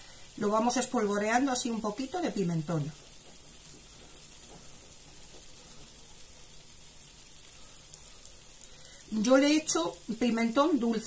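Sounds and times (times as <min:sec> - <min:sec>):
eggs sizzling in a frying pan: 0:00.0 - 0:11.0.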